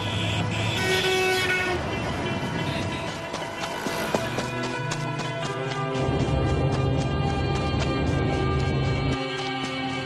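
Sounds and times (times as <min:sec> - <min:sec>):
horn-like tone: 0:00.0 - 0:03.2.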